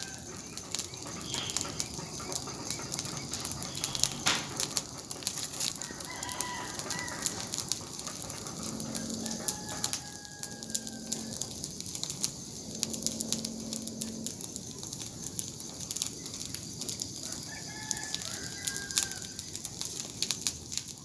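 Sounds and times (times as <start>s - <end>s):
rooster crowing: 0.0s - 0.6s, 1.2s - 14.3s, 17.1s - 19.6s
bonfire crackling and popping: 0.0s - 21.0s.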